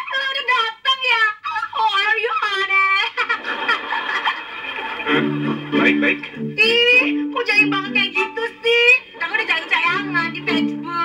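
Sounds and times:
woman laughing loudly: 3.0 - 4.6.

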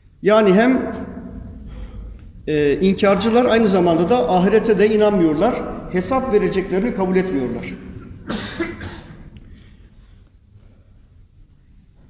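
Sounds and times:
man coughing: 8.0 - 9.3.

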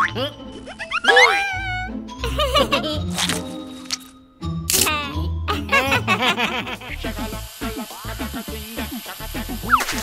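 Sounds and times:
high-pitched cartoon voices: 0.0 - 2.0
steady hiss: 7.0 - 10.0.

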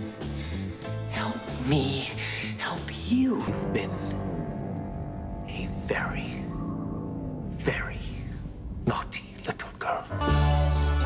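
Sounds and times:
film score music with held notes: 0.0 - 11.0.

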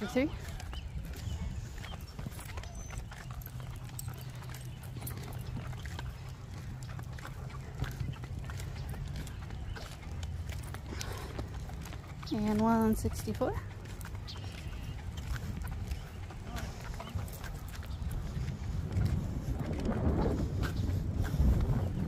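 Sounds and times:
stroller wheels rolling on asphalt: 0.0 - 22.0.

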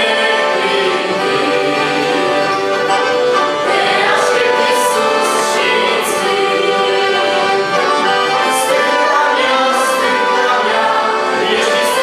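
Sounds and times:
accordions: 0.0 - 12.0
young singers singing a hymn: 0.0 - 12.0.

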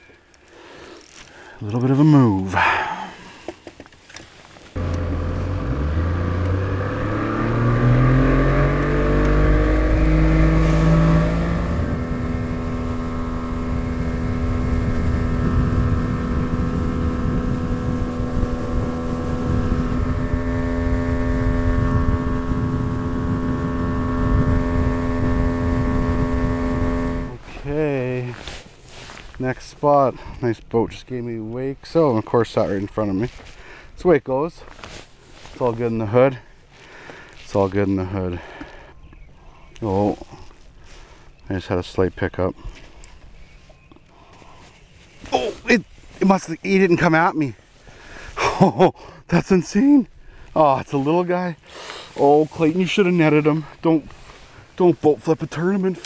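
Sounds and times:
outboard motor accelerating: 4.8 - 27.4.

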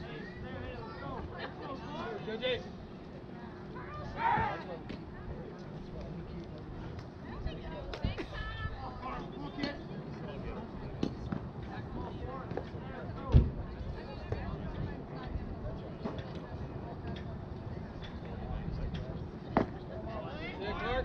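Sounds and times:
distant voices chattering: 0.0 - 21.0.

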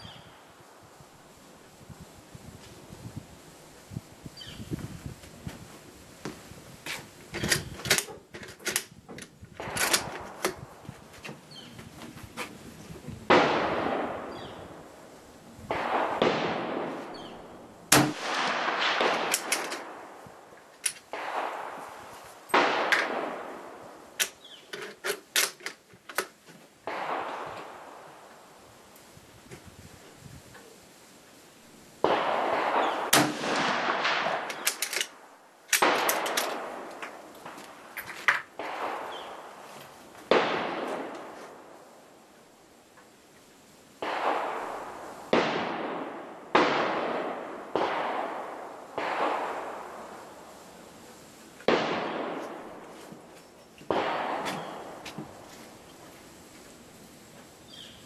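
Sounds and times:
rifle handling clicks: 6.9 - 10.6, 19.3 - 19.8, 20.8 - 21.1, 24.2 - 26.4, 34.4 - 38.4
rifle shots echoing: 9.6 - 10.6, 13.3 - 14.9, 15.7 - 24.6, 26.8 - 28.3, 32.0 - 37.9, 38.6 - 39.6, 40.3 - 41.8, 44.0 - 50.4, 51.6 - 52.9, 53.9 - 55.0.

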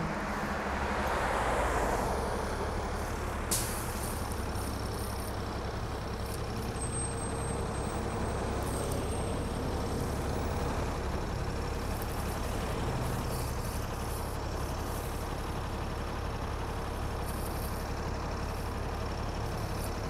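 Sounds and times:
bus engine rumble: 0.0 - 20.0
air brake hiss: 3.5 - 4.3.

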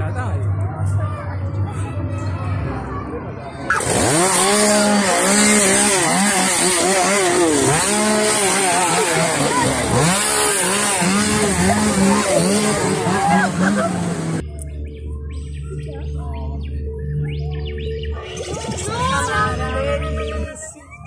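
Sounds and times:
chainsaw revving: 3.7 - 14.4.

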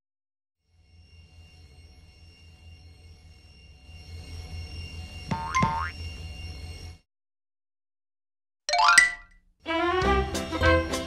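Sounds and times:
cartoon boing twangs: 5.3 - 5.9.

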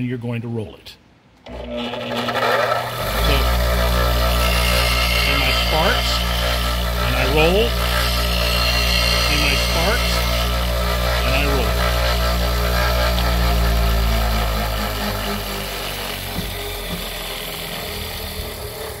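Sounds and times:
bench grinder motor humming: 1.4 - 19.0
steel tool grinding on wheel: 1.4 - 19.0.

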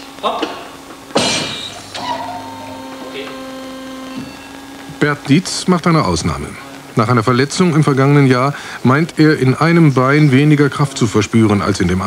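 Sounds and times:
electric machine hum: 0.0 - 12.0.

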